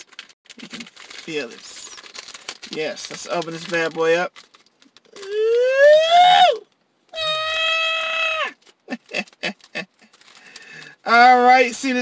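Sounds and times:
man's wordless high exclamations: 5.2 - 8.6
man laughing: 8.9 - 10.2.

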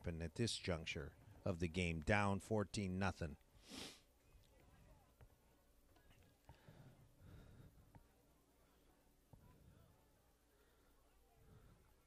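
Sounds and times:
faint outdoor murmur: 0.0 - 12.0.

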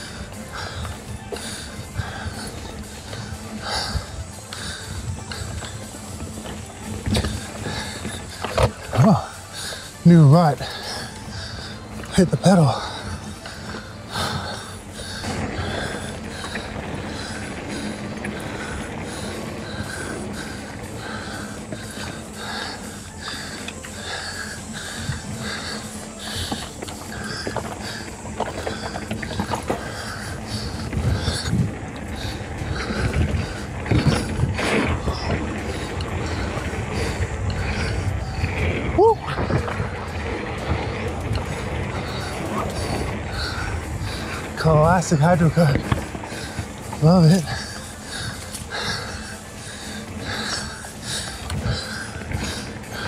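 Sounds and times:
bike knocking and rattling: 0.0 - 53.0
bike tyres rolling over dirt: 0.0 - 53.0.

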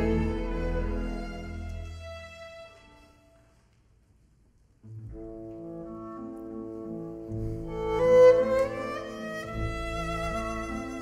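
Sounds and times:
solo violin: 0.0 - 3.4, 7.3 - 11.0
orchestra playing classical music: 0.0 - 3.6, 5.2 - 11.0.

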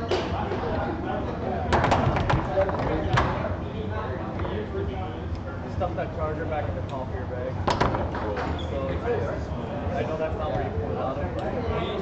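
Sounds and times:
spectator chatter: 0.0 - 12.0.

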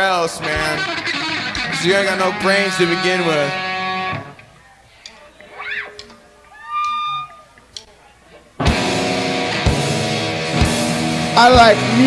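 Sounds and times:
electric guitar chord: 0.4 - 4.4, 8.6 - 12.0
held guitar tone: 0.4 - 4.6, 8.6 - 12.0.

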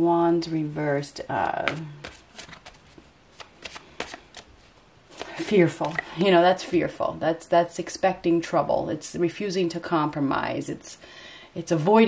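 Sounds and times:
cards being shuffled: 1.4 - 6.8.

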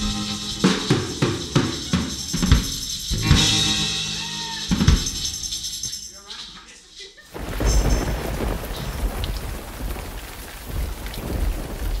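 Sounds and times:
rain hissing: 5.2 - 12.0
thunder rumbling: 7.3 - 12.0.

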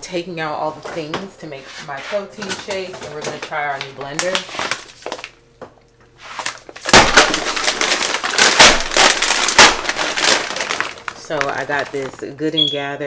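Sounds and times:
plastic bag crinkling: 3.0 - 5.4, 6.2 - 12.5.

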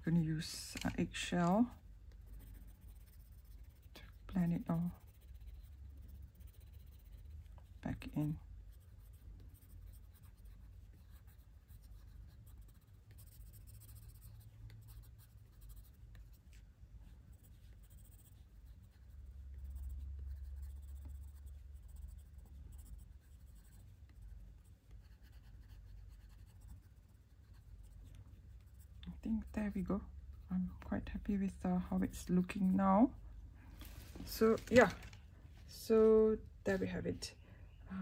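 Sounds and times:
pencil scratching on paper: 0.2 - 33.2.

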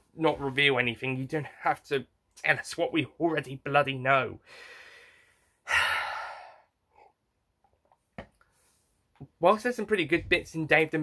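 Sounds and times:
faint breath in: 4.4 - 7.1
man sighing: 5.6 - 7.1.

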